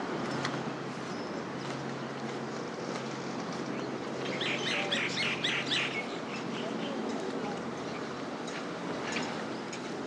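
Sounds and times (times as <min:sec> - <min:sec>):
street background hum: 0:00.0 - 0:10.0
bird chirping: 0:03.7 - 0:07.0.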